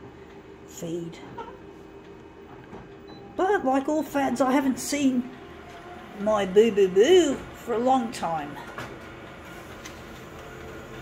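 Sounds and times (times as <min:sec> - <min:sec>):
office copier printing: 0:01.6 - 0:11.0.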